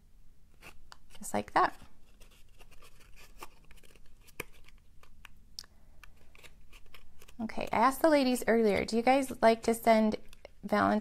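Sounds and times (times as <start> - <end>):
paper rustling and crinkling: 0.6 - 5.2, 6.1 - 7.8
small paper clicks: 2.2 - 7.8.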